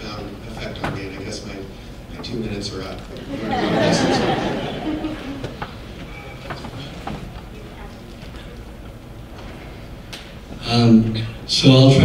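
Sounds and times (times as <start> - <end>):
audience laughing and chattering: 3.1 - 9.0.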